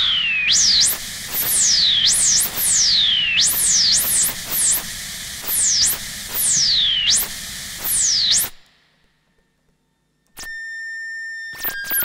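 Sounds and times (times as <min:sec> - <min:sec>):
click: 0:08.5 - 0:10.6, 0:11.6 - 0:12.0.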